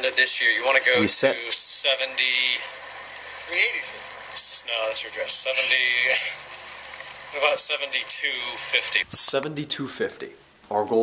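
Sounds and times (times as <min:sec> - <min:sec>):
man talking through laptop speakers: 0:00.0 - 0:02.7, 0:03.5 - 0:06.4, 0:07.4 - 0:11.0
low background hiss: 0:00.0 - 0:11.0.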